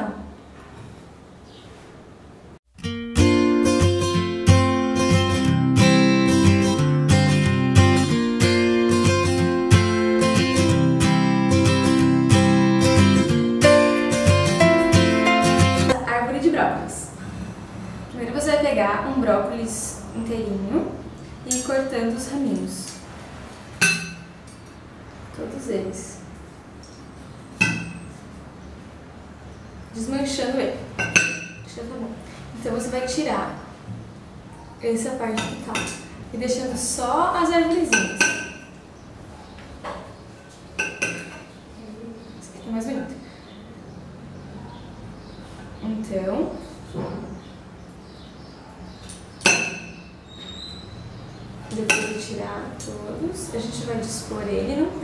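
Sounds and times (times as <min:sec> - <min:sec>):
knife clinking on plate: 0:27.6 - 0:28.2, 0:31.0 - 0:31.7, 0:40.8 - 0:41.4, 0:51.8 - 0:52.2
plate ringing: 0:27.6 - 0:28.2.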